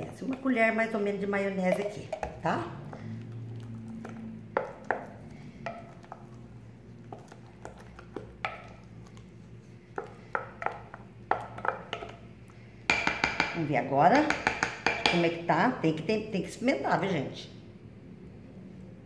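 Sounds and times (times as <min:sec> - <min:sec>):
spoon stirring mashed potato: 0:00.0 - 0:15.4.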